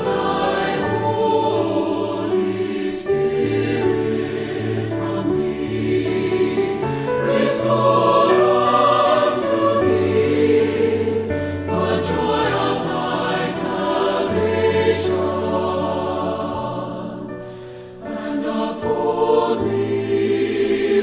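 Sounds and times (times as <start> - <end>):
mixed choir singing: 0.0 - 21.0
piano accompaniment: 0.0 - 21.0.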